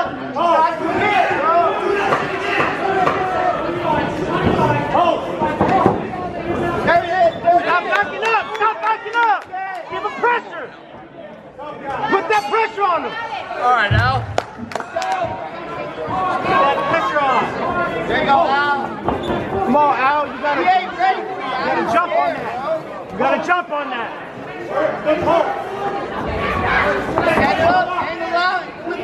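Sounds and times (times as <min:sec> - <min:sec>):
spectators talking and calling out: 0:00.0 - 0:29.0
low thump: 0:13.9 - 0:14.7
sharp knocks: 0:13.9 - 0:14.9.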